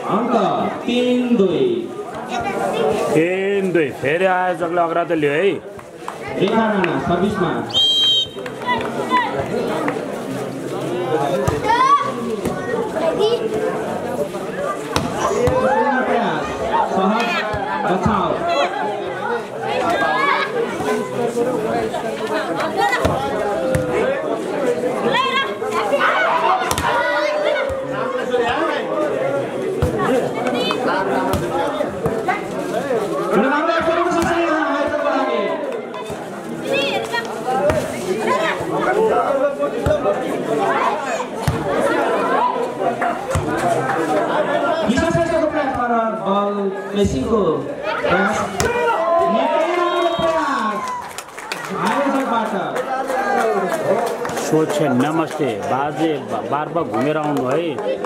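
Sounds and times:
people calling out and chattering: 0.0 - 58.0.

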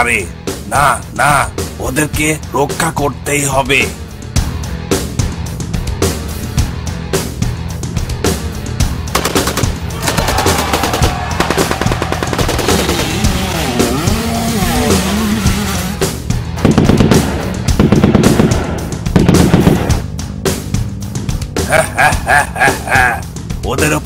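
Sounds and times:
background music: 0.0 - 24.0
cartoon automatic gunfire: 9.1 - 13.3, 16.6 - 20.0.

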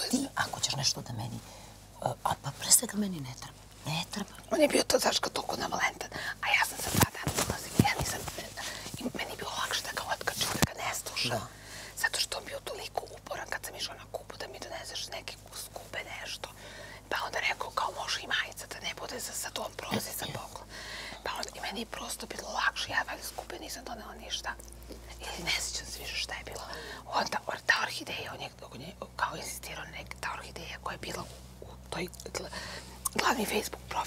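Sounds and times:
women whispering: 2.0 - 34.0.

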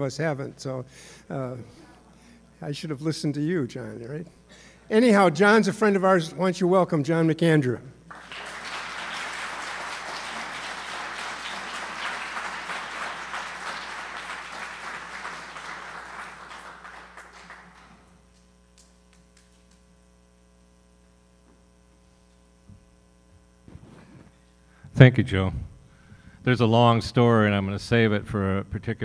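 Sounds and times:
electrical hum: 0.0 - 29.0
audience applauding: 8.1 - 19.7.

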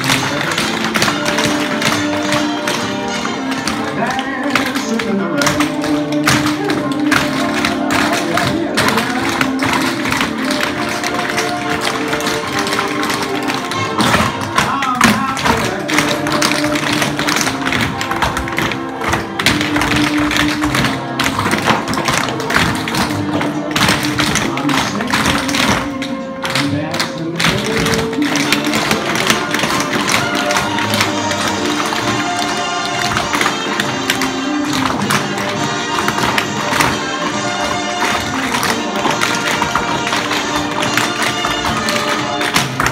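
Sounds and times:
recorded music with melody: 0.0 - 42.9
tap shoes on hardwood floor: 0.0 - 42.9.

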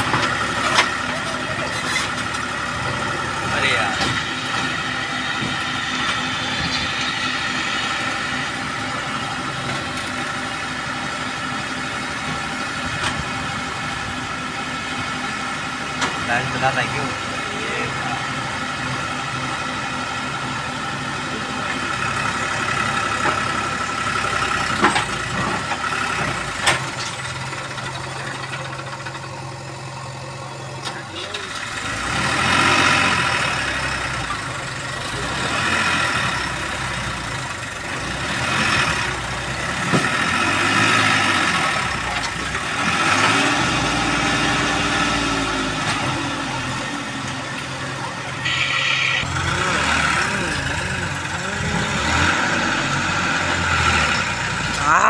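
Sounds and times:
backhoe loader engine: 0.0 - 55.0
tractor diesel engine running: 0.0 - 55.0.

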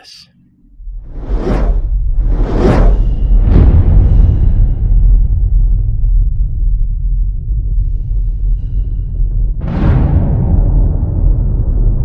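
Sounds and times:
deep low rumble: 0.6 - 12.0.

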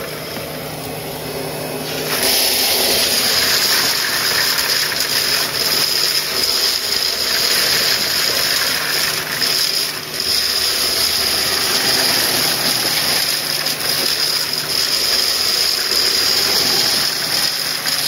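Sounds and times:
pressure washer humming: 0.0 - 18.0
water jet rushing hiss: 0.0 - 18.0.

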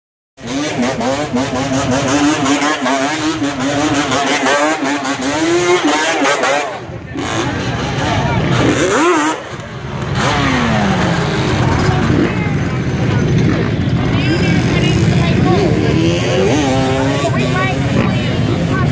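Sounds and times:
crowd talking and shouting: 0.4 - 18.9
quad engines revving: 0.4 - 18.9.

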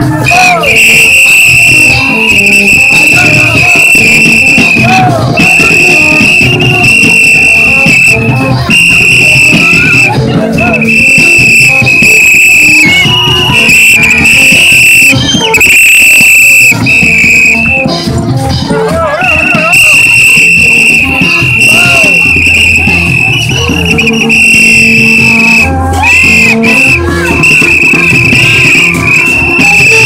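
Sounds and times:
shrill horn blasts: 0.0 - 18.1, 18.9 - 30.0
voices: 0.0 - 30.0.

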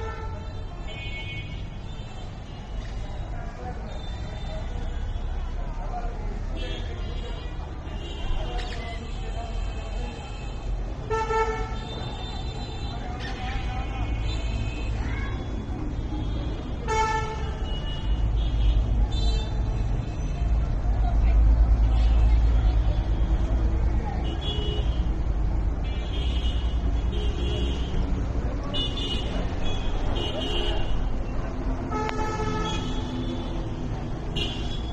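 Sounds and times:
low traffic rumble: 0.0 - 34.9
vehicle horns honking: 9.3 - 13.0, 16.2 - 19.6, 28.8 - 31.0, 31.9 - 33.6, 34.3 - 34.9.

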